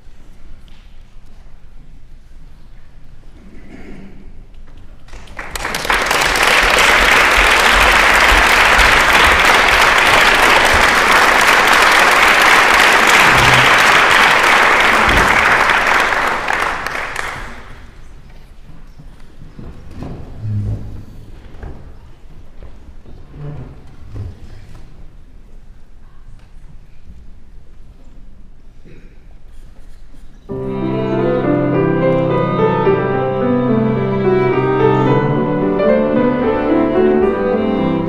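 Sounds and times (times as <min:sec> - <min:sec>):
audience applause: 0:05.0 - 0:18.0.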